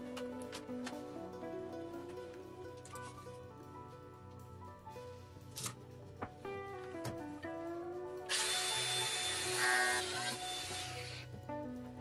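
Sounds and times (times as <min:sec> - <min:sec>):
power tool cutting plastic tube: 0:08.3 - 0:11.3.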